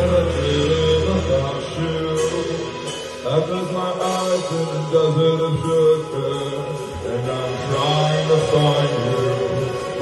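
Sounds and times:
chanted vocal: 0.0 - 10.0
post-punk band playing live: 0.0 - 10.0.

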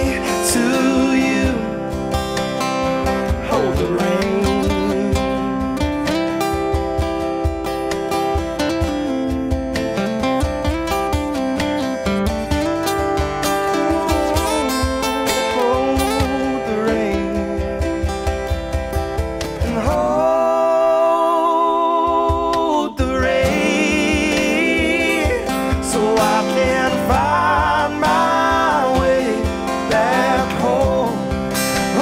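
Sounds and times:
acoustic guitars strummed and picked: 0.0 - 32.0.

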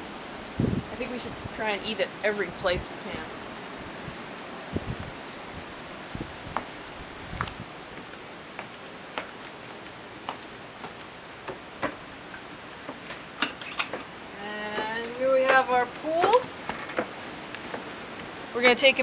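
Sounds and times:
steady background noise: 0.0 - 19.0
footsteps on wooden stairs: 8.0 - 12.0.

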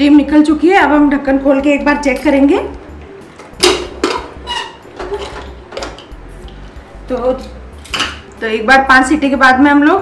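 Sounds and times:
pressure cooker lid clanking: 3.6 - 4.4.

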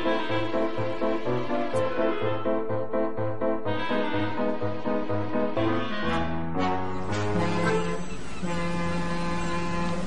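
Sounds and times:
ferry horn blast: 5.6 - 10.0.

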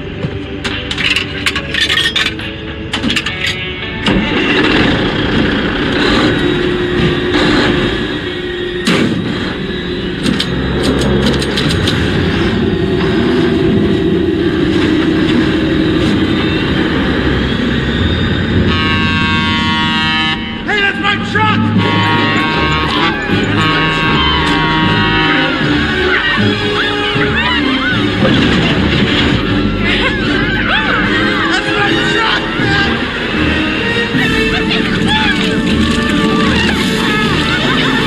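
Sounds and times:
background music: 0.0 - 38.0
steady tones: 0.0 - 38.0
truck engine rumble: 0.0 - 38.0.

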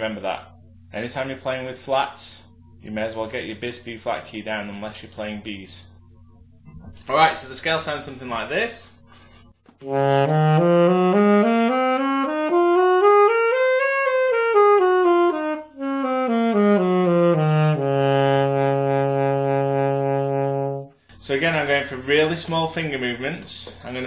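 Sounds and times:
alto saxophone playing a scale: 9.8 - 21.0.

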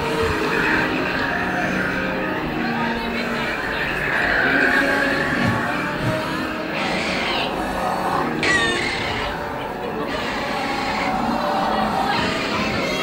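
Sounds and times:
animal calls: 0.0 - 13.0
moving train running noise: 0.0 - 13.0
soundtrack music: 0.0 - 13.0.

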